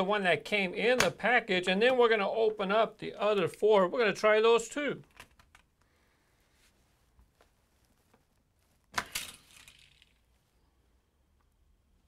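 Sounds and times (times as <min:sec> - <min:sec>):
plastic toy launcher clicks: 0:08.9 - 0:10.1.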